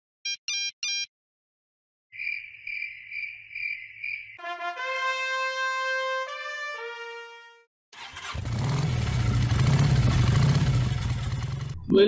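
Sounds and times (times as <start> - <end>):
crickets chirping: 2.1 - 4.4.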